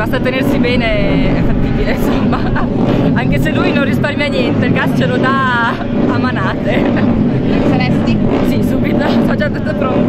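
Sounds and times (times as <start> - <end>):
drone of engines: 0.0 - 10.0
woman talking: 0.0 - 10.0.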